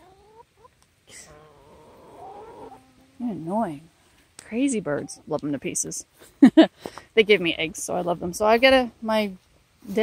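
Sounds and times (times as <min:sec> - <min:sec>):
hens clucking and trilling: 0:00.0 - 0:06.4.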